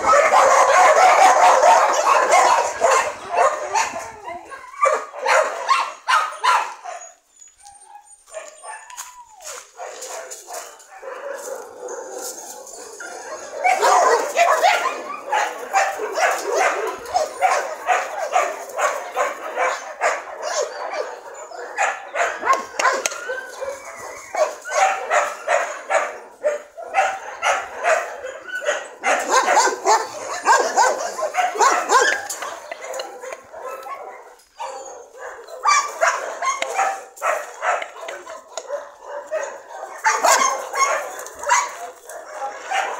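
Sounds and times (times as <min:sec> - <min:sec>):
dogs barking: 0:00.0 - 0:07.2, 0:07.9 - 0:42.9.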